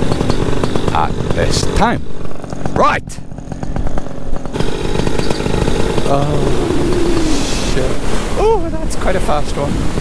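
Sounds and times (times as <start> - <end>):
paramotor engine running: 0.0 - 10.0
wind rushing on microphone: 6.2 - 10.0.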